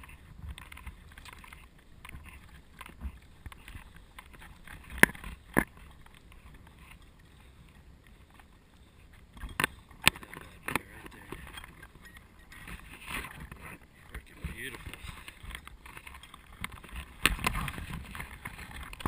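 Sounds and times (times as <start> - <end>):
sharp clicks and knocks: 0.0 - 7.0
faint moving water: 0.0 - 19.0.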